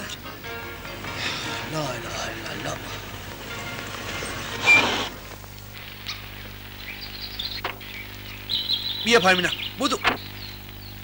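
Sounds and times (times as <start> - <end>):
birds chirping: 0.0 - 11.0
low soundtrack hum: 0.0 - 11.0.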